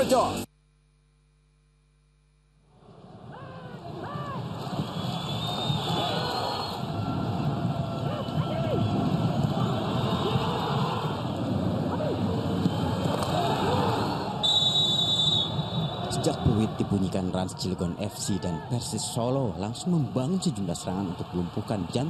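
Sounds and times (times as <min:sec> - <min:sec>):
players shouting: 0:05.5 - 0:22.0
referee's whistle blast: 0:14.4 - 0:16.2.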